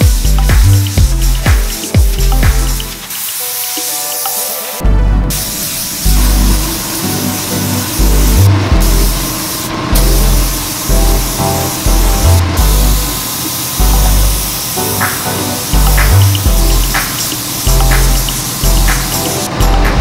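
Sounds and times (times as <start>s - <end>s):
music with heavy bass beat: 0.0s - 4.0s, 4.8s - 13.2s, 13.8s - 20.0s
spray gun hissing: 0.0s - 20.0s.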